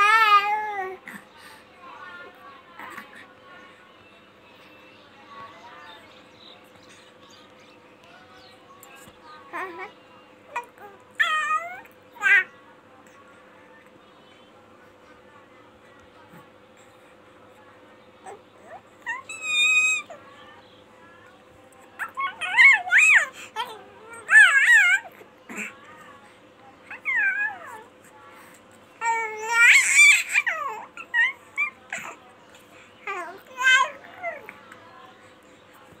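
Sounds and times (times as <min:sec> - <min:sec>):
faint steady hum: 0:00.0 - 0:36.0.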